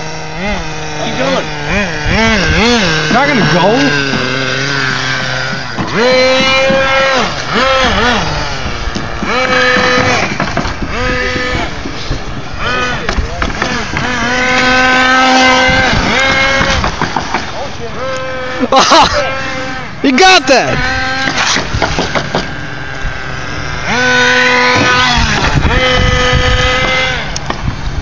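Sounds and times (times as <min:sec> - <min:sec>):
small engine revving: 0:00.0 - 0:28.0.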